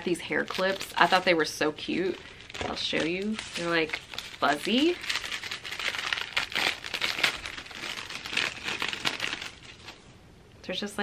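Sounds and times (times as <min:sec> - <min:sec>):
packaging crinkling: 0:00.0 - 0:10.1.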